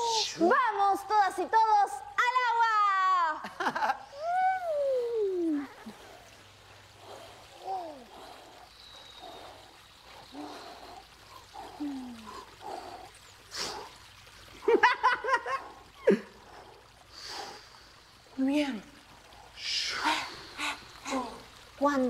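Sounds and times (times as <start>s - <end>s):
water splashing: 0.0s - 22.0s.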